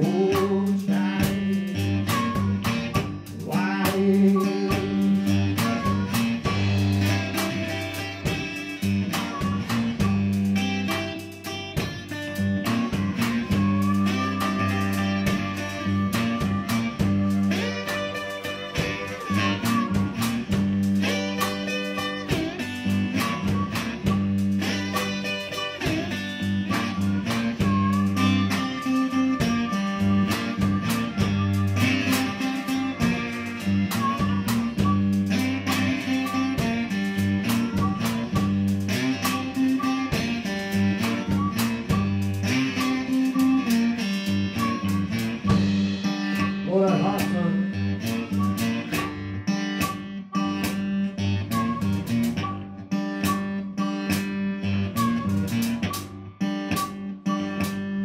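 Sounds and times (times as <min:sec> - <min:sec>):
live blues band playing: 0:00.0 - 0:58.0
low bass notes: 0:00.0 - 0:58.0
plucked guitar lines: 0:00.0 - 0:58.0.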